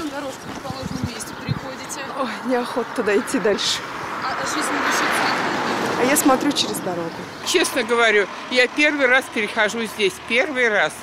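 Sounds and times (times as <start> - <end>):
minibus passing: 0.0 - 11.0.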